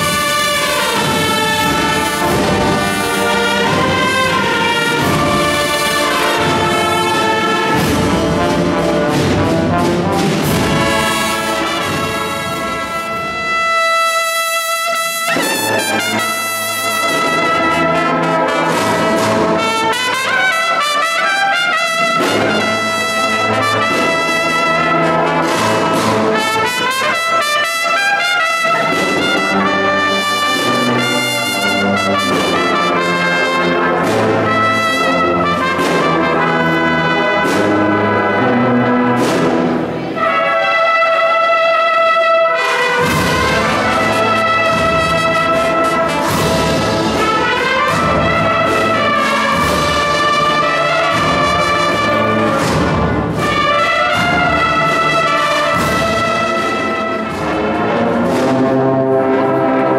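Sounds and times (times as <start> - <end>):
brass band playing held chords: 0.0 - 59.9.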